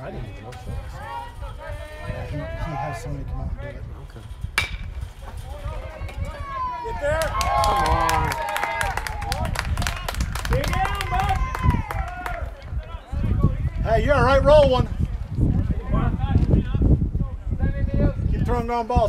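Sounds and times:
voices shouting and calling out: 0:00.0 - 0:19.0
bat hitting baseball crack: 0:04.6 - 0:05.4.

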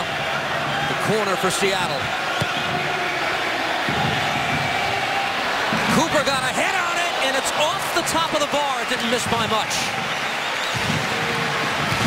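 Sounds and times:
large stadium crowd noise: 0:00.0 - 0:12.0.

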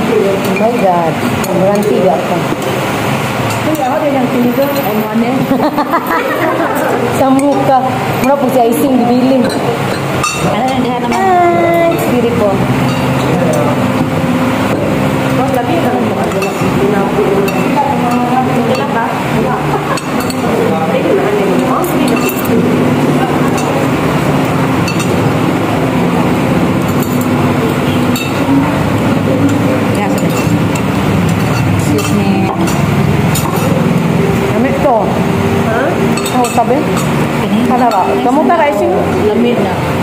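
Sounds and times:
steady background hum: 0:00.0 - 0:40.0
voices talking: 0:00.0 - 0:40.0
cutlery clinking on ceramic bowl: 0:09.3 - 0:11.3, 0:19.8 - 0:20.6, 0:21.8 - 0:22.6, 0:24.8 - 0:25.3, 0:26.8 - 0:28.6, 0:29.4 - 0:33.9, 0:36.1 - 0:38.5.

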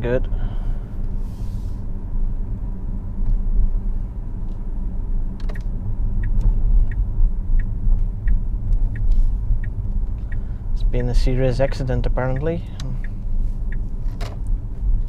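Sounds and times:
road and tyre rumble: 0:00.0 - 0:15.0
light regular ticking: 0:05.4 - 0:14.6.

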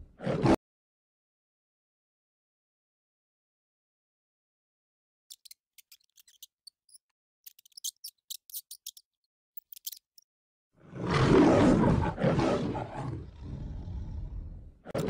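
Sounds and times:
lion roaring: 0:00.0 - 0:00.6, 0:10.8 - 0:15.0.

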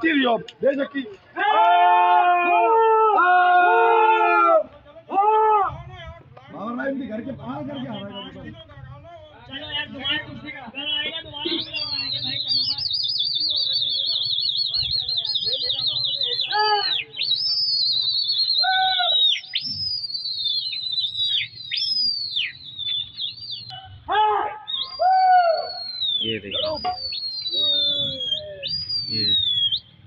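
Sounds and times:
high shouts: 0:01.3 - 0:05.9, 0:16.4 - 0:17.2, 0:18.5 - 0:19.5, 0:23.7 - 0:26.0
men whistling: 0:07.4 - 0:08.9, 0:09.5 - 0:30.0.

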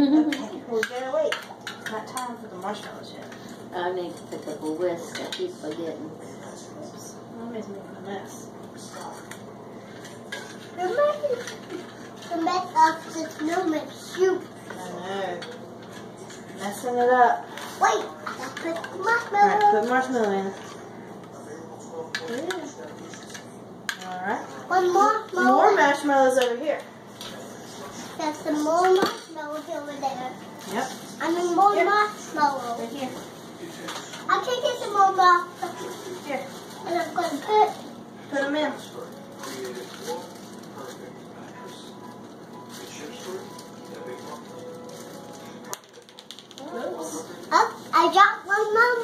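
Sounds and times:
faint background music: 0:00.0 - 0:49.0
soft indistinct voices: 0:00.0 - 0:49.0.

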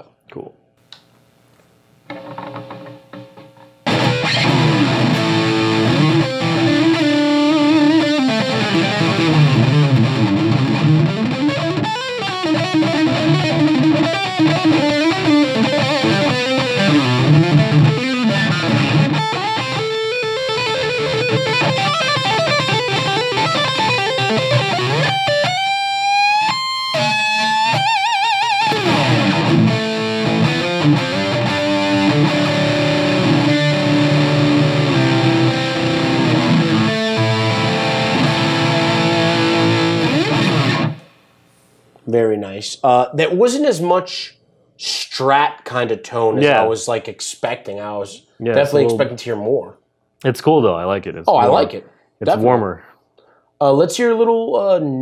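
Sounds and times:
electric guitar melody: 0:03.8 - 0:41.2, 0:51.3 - 0:52.4.

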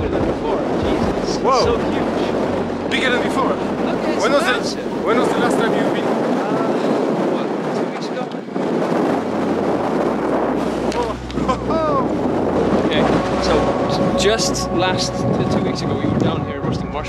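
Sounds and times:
strong wind on microphone: 0:00.0 - 0:17.0.

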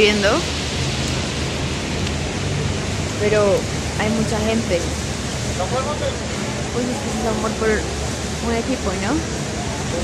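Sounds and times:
heavy rain falling: 0:00.0 - 0:10.0
traffic on a wet road: 0:00.0 - 0:10.0.

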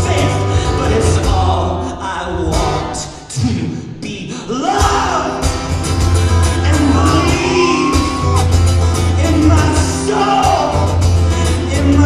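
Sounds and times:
acoustic guitar strumming: 0:04.8 - 0:12.0
wordless singing: 0:06.4 - 0:12.0.

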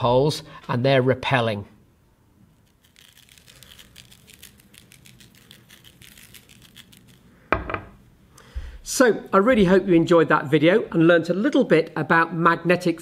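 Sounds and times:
paper with iron filings crackling: 0:02.6 - 0:07.3.

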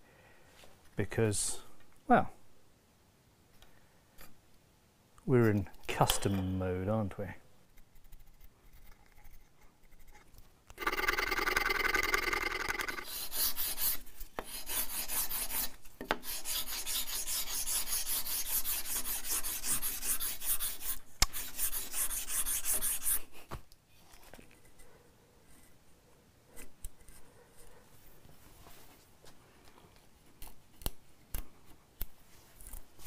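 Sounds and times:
rasp strokes on wood: 0:12.1 - 0:23.2.

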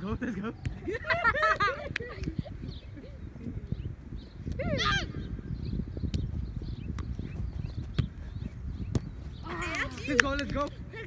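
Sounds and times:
wind on microphone: 0:00.0 - 0:11.0
soccer ball kicks: 0:06.1 - 0:10.7.

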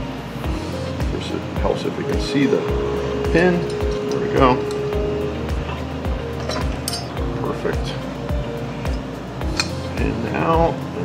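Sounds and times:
music with steady beat: 0:00.0 - 0:11.0
sharp metallic click: 0:09.5 - 0:09.8.

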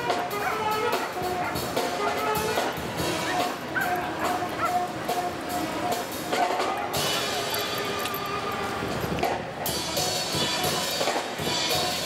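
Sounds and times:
music with held notes: 0:00.0 - 0:12.0
dog barking: 0:00.2 - 0:04.9, 0:06.4 - 0:07.5.

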